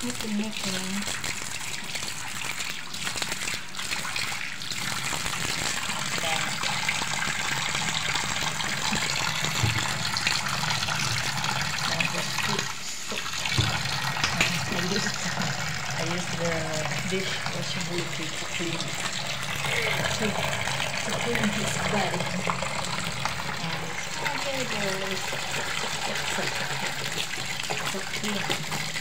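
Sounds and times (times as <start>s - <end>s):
tap water running into sink: 0.0s - 29.0s.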